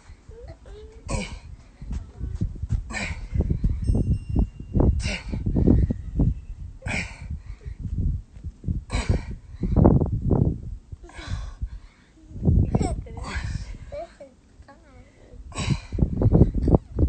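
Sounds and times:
low rumbling on microphone: 0:00.0 - 0:14.2, 0:15.3 - 0:17.0
man breathing hard: 0:06.8 - 0:07.9, 0:11.1 - 0:12.2.

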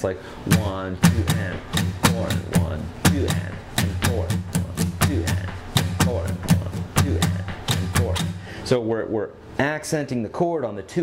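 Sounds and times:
acoustic guitar strumming: 0:00.2 - 0:08.6.

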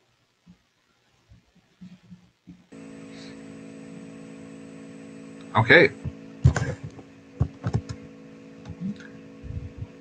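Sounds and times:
electrical hum: 0:00.0 - 0:10.0.

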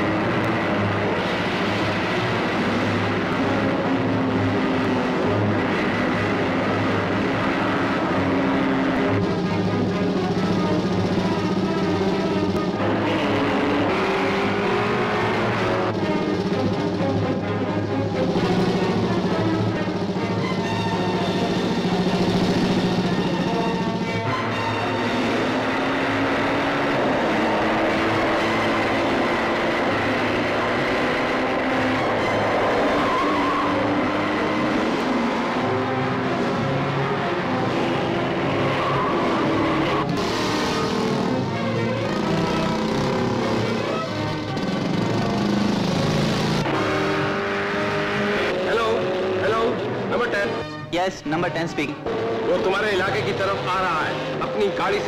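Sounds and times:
background music: 0:00.0 - 0:55.0
jeep engine running: 0:00.0 - 0:55.0.

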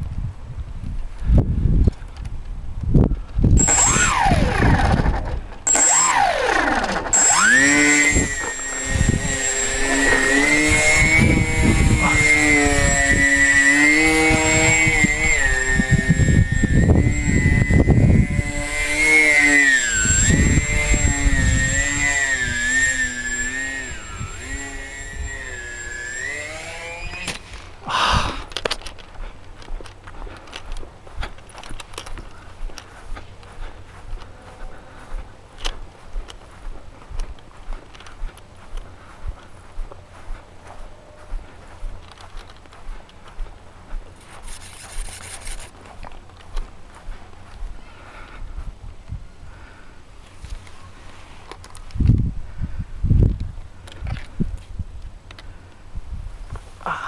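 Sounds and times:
model plane crashing: 0:03.6 - 0:29.0
model airplane propellers whining: 0:03.6 - 0:40.0, 0:40.7 - 0:48.3.

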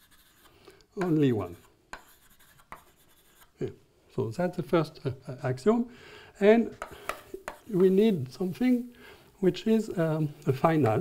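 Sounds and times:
chalk scratching on blackboard: 0:00.0 - 0:03.6, 0:06.8 - 0:08.0
chalk tapping: 0:00.0 - 0:03.6, 0:06.7 - 0:08.2, 0:10.7 - 0:11.0.

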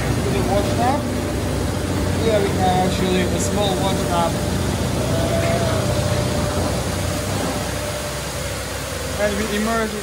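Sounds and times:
low hum: 0:00.0 - 0:09.9
washing machine running: 0:00.0 - 0:10.0.

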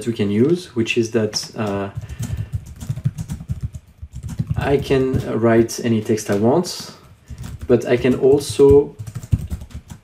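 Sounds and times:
computer keyboard typing: 0:01.2 - 0:10.0.

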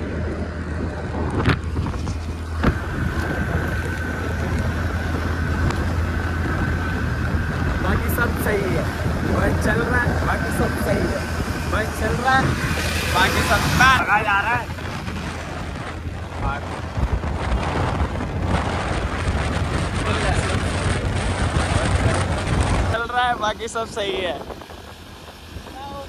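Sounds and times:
wind rushing over microphone: 0:00.0 - 0:26.0.

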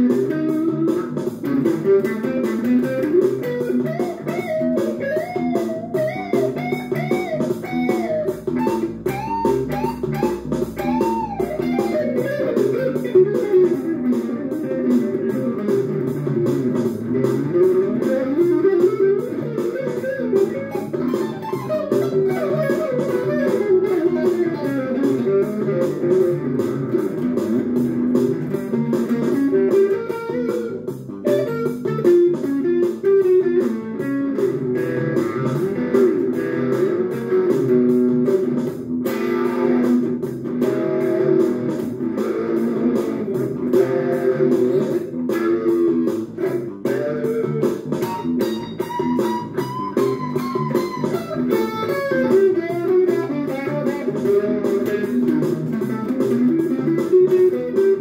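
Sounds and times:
electric guitar notes and chords: 0:00.0 - 0:58.0.

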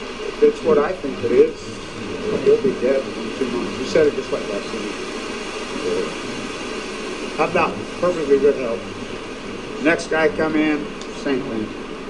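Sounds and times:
steady rushing noise: 0:00.0 - 0:12.0
faint murmur of voice: 0:00.2 - 0:05.0.

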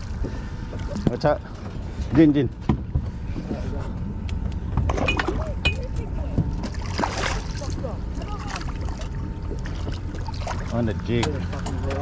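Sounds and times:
wind and water rumble: 0:00.0 - 0:12.0
water splashing at hull: 0:04.6 - 0:12.0.

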